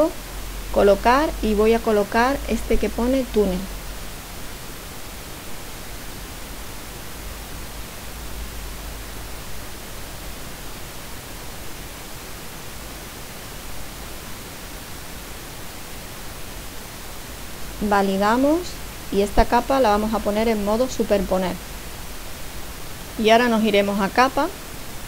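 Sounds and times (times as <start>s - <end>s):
steady hiss: 0.0s - 25.0s.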